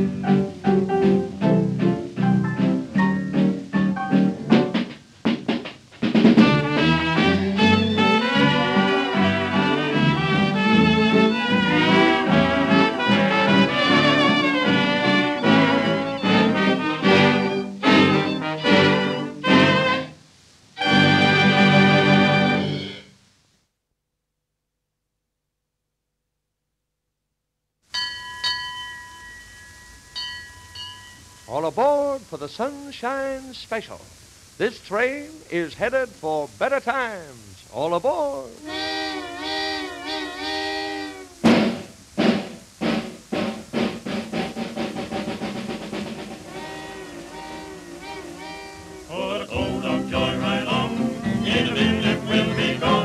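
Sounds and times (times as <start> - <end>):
jazz band imitating train chugging: 0.0 - 20.2, 20.8 - 23.0, 31.5 - 53.0
jazz dance band playing: 0.0 - 23.1, 31.2 - 53.0
recording hiss: 0.0 - 23.8, 27.8 - 53.0
bell ringing: 27.9 - 31.6
man calling out: 31.5 - 38.9.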